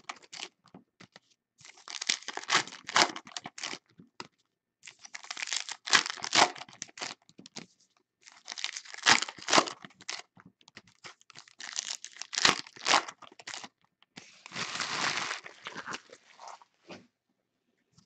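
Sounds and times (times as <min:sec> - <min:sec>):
foil wrapper tearing and crinkling: 0:01.6 - 0:03.8, 0:04.8 - 0:07.2, 0:08.3 - 0:10.3, 0:11.0 - 0:13.7, 0:14.4 - 0:16.4.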